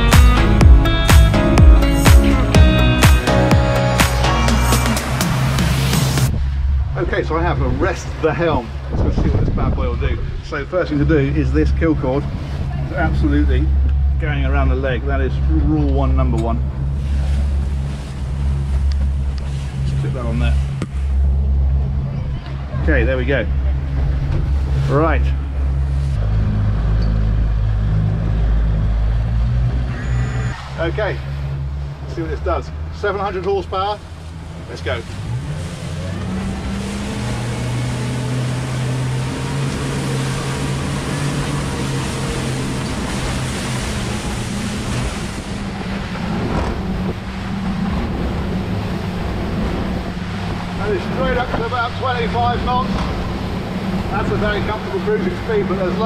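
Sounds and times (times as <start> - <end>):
outboard engines idling: 0.0 - 56.0
wind and water spray rushing: 5.0 - 13.5, 33.6 - 56.0.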